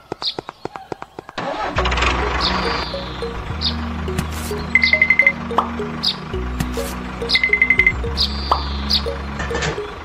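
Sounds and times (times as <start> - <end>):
tractor engine running: 1.4 - 10.0
light music with chirping notes: 1.5 - 10.0.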